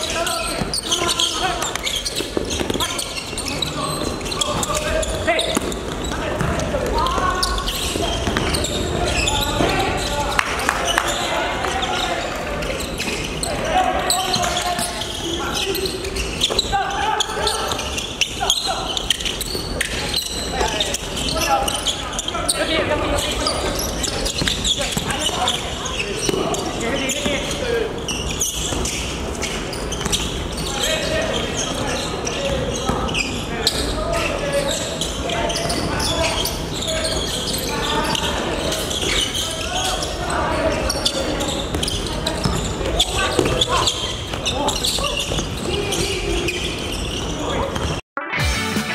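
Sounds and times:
players calling out: 0.0 - 48.0
basketball bouncing on wooden court: 0.3 - 10.1, 28.2 - 30.7, 40.9 - 48.0.

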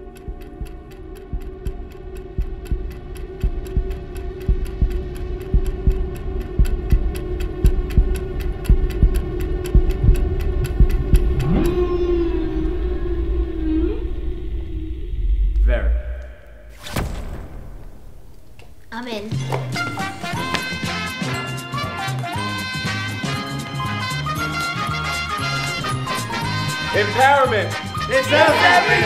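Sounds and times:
clock-like ticking: 0.0 - 11.8
long gliding tone: 11.4 - 16.7.

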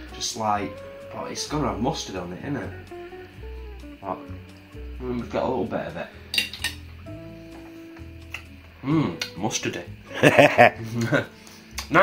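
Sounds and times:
soft background music: 0.0 - 12.0
cutlery clinking against a plate: 6.3 - 6.8.

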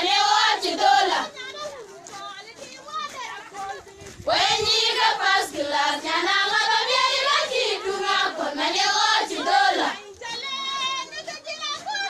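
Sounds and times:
young women singing together: 0.0 - 1.5, 2.1 - 11.4.

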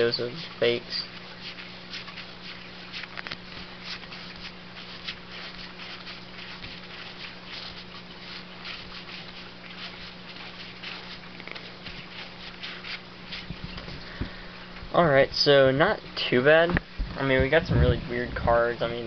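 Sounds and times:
steady low hum: 0.0 - 19.0
trading cards rustling and clicking: 1.5 - 6.6, 10.6 - 14.4.

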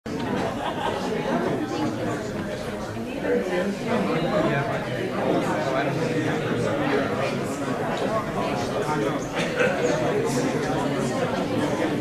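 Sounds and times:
chatter of many people: 0.0 - 12.0.

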